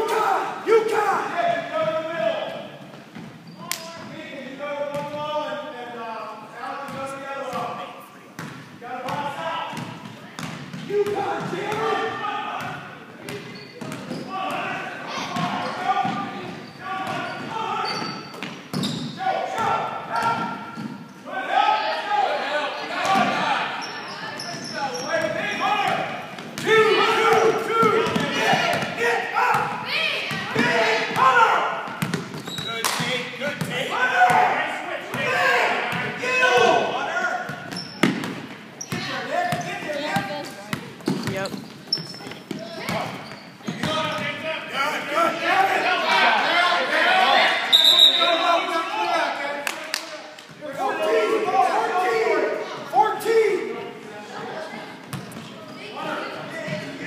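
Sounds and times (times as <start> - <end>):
voices talking and calling out: 3.4 - 57.0
basketball bouncing on wooden floor: 40.2 - 44.2.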